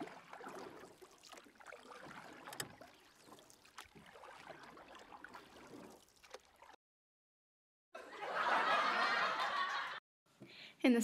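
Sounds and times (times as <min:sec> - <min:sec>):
river water lapping and splashing: 0:00.0 - 0:06.8.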